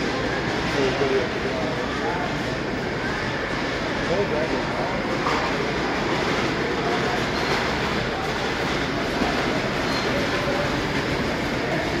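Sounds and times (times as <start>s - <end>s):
model train running on track: 0.0s - 12.0s
murmur of voices: 0.0s - 12.0s.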